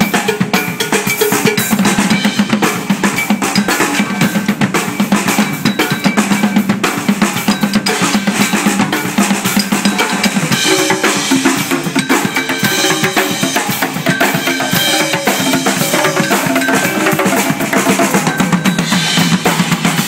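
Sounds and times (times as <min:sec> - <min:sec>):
drums and cymbals playing: 0:00.0 - 0:20.0.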